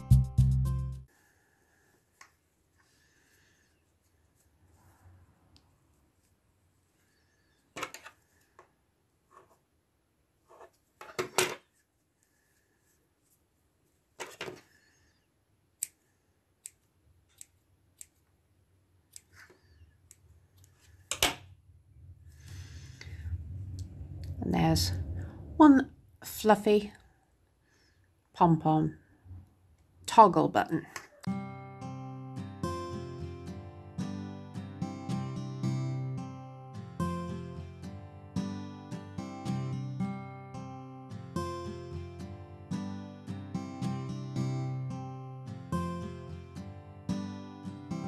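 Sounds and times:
scissors snipping yarn: 15.8s - 18.3s, 19.1s - 20.9s.

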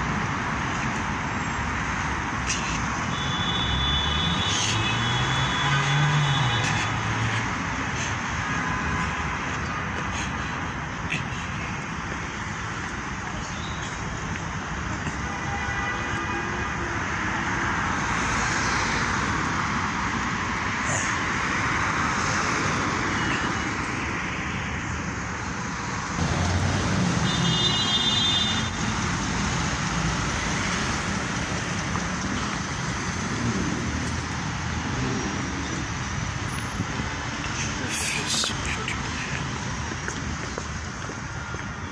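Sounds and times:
cars passing on busy road: 0.0s - 41.9s.

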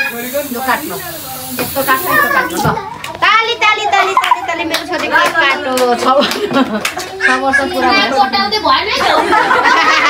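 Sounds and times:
aerosol spray can hissing: 0.0s - 2.6s.

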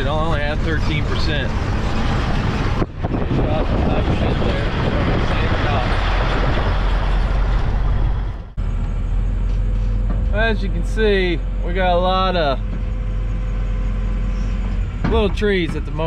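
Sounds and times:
wind noise: 0.0s - 8.6s
truck engine and road rumble: 0.0s - 16.0s.

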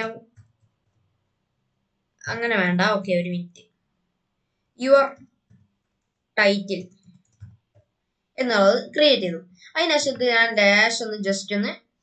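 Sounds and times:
person speaking: 0.0s - 0.6s, 2.2s - 3.6s, 4.8s - 5.2s, 6.4s - 7.5s, 8.4s - 11.7s
keyboard keys clicking: 6.9s - 7.8s.

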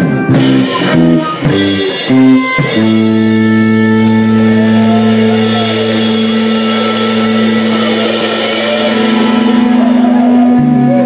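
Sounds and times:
sustained guitar and bass chord: 0.0s - 11.0s
cymbal shimmer: 0.6s - 11.0s.

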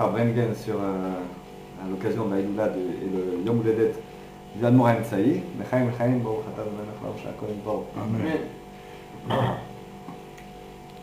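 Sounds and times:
low steady hum: 0.0s - 11.0s
swallowing sound: 9.2s - 9.7s.

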